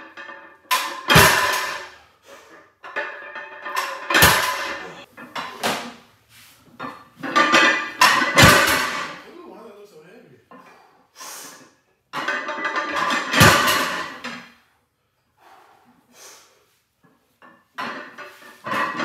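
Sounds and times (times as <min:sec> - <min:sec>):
barbell plates thudding on floor: 0:00.0 - 0:02.0, 0:02.8 - 0:06.0, 0:06.8 - 0:09.2, 0:12.2 - 0:14.5, 0:17.8 - 0:19.0.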